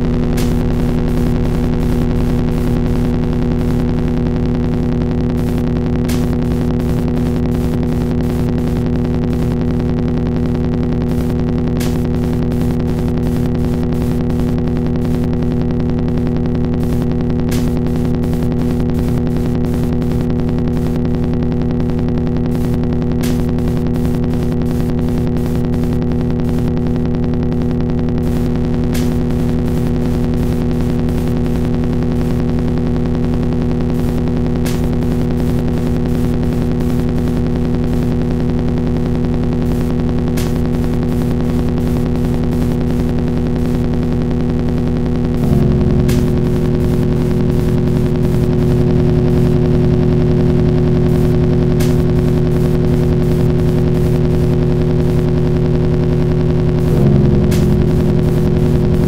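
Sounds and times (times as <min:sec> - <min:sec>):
electric guitar drone: 0:00.0 - 0:59.0.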